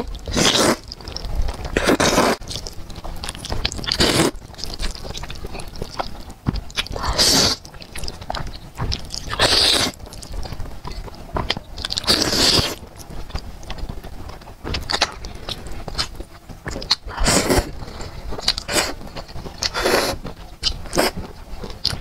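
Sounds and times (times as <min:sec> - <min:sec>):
wet chewing: 0:00.0 - 0:22.0.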